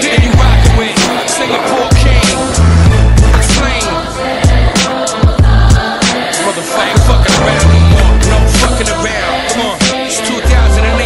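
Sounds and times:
hip hop backing track: 0:00.0 - 0:11.0.

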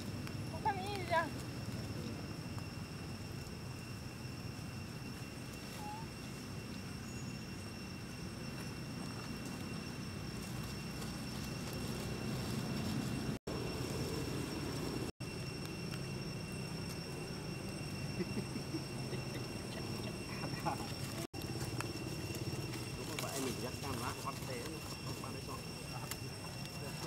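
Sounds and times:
rustling in dry leaves: 0:00.0 - 0:07.1, 0:08.2 - 0:18.6, 0:19.2 - 0:27.0
thin high-pitched whine: 0:00.0 - 0:27.0.

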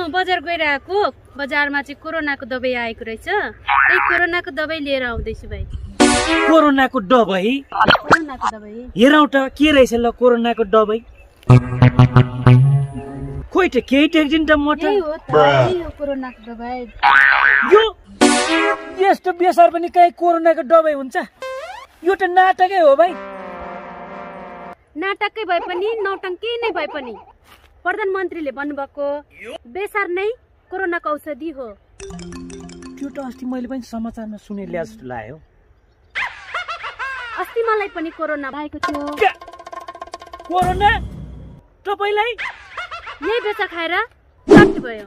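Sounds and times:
cartoon boing sound effect: 0:11.5 - 0:13.4, 0:17.0 - 0:18.8
person speaking: 0:14.9 - 0:15.9, 0:32.5 - 0:33.8.

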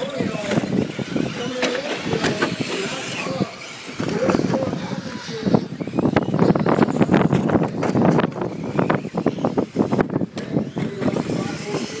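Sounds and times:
rc cars crackling on dirt track: 0:00.0 - 0:12.0.

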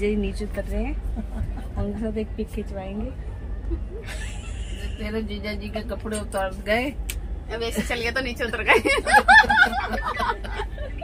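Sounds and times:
steady low rumble: 0:00.0 - 0:11.0
woman laughing: 0:03.6 - 0:05.3, 0:08.7 - 0:11.0.

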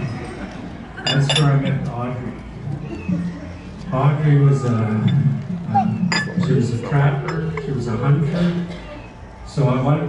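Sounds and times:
murmur of voices: 0:00.0 - 0:10.0
tableware clinking on table: 0:01.0 - 0:01.8, 0:06.1 - 0:06.6.

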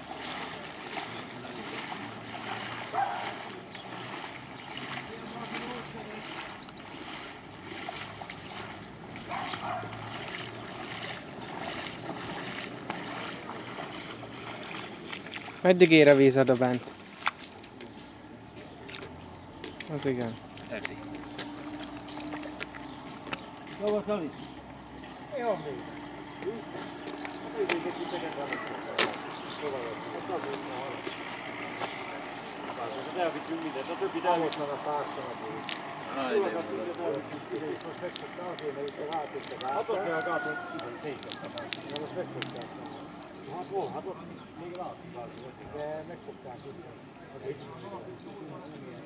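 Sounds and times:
person wading through water: 0:00.0 - 0:43.8.

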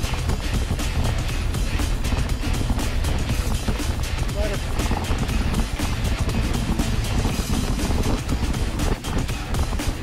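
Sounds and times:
bike rattling over dirt trail: 0:00.0 - 0:10.0
wind rushing over camera: 0:00.0 - 0:10.0.

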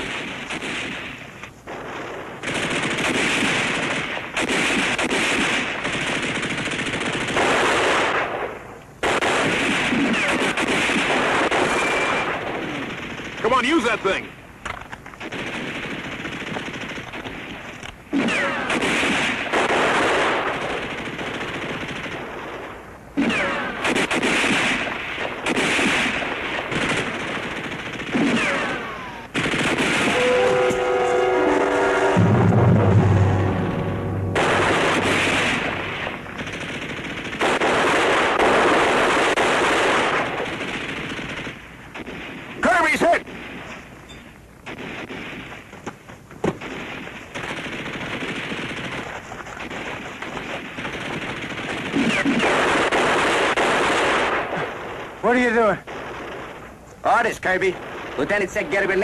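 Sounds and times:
automatic gunfire: 0:00.0 - 0:14.2, 0:15.2 - 0:31.0, 0:32.2 - 0:43.7, 0:46.4 - 0:56.6.

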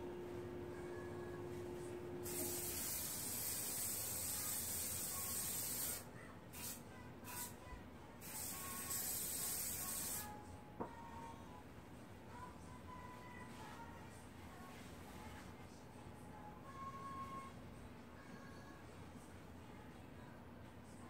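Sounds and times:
aerosol spray can hissing: 0:02.2 - 0:06.0, 0:08.2 - 0:10.3.

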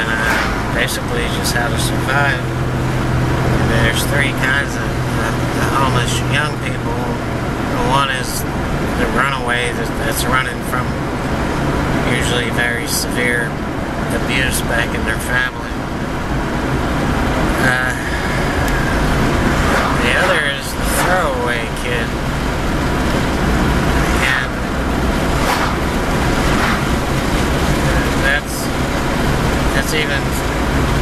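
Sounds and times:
man talking: 0:00.0 - 0:02.6, 0:03.5 - 0:11.0, 0:12.0 - 0:15.8, 0:17.6 - 0:22.2, 0:24.0 - 0:24.7, 0:27.8 - 0:28.8, 0:29.6 - 0:30.6
car road and engine rumble: 0:00.0 - 0:31.0.

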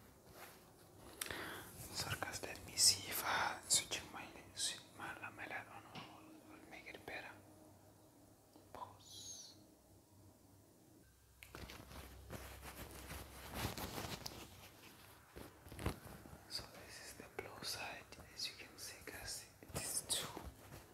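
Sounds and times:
man whispering: 0:01.8 - 0:07.6, 0:08.5 - 0:09.6, 0:16.5 - 0:20.6.

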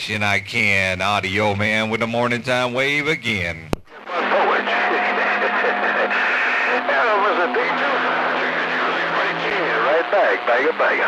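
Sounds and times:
garbled radio voices: 0:03.9 - 0:11.0
static hiss: 0:03.9 - 0:11.0.

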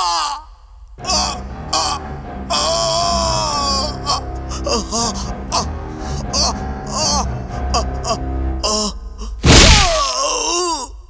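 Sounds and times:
man groaning cry: 0:01.0 - 0:09.0
punch sound effect: 0:09.4 - 0:10.0.

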